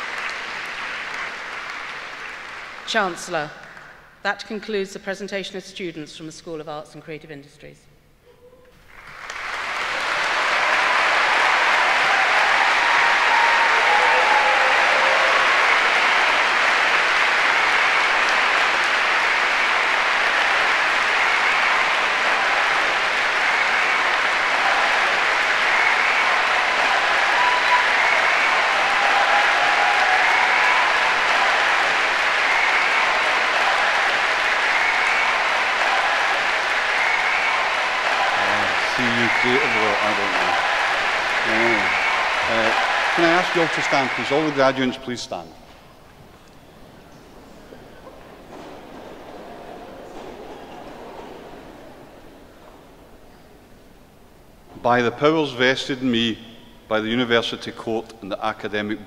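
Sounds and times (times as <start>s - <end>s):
large audience applauding: 0.0s - 4.1s, 8.8s - 54.6s.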